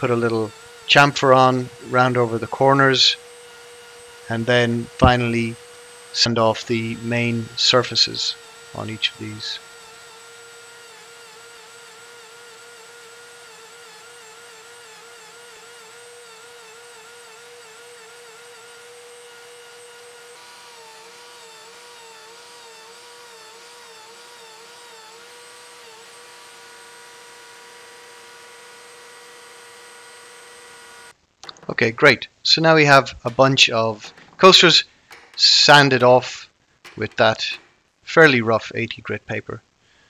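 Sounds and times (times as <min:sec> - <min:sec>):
belt sander motor whine: 0:00.0 - 0:31.8, 0:32.9 - 0:36.3, 0:36.9 - 0:38.3.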